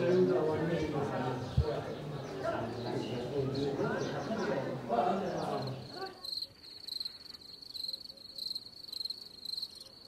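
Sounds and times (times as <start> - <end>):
cricket chirping: 5.6 - 10.0.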